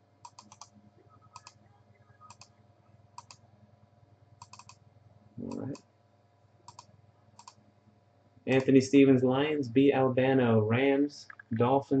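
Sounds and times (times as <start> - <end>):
computer mouse clicking: 0.2 - 1.6, 2.3 - 2.5, 3.2 - 3.4, 4.4 - 4.8, 6.7 - 7.6.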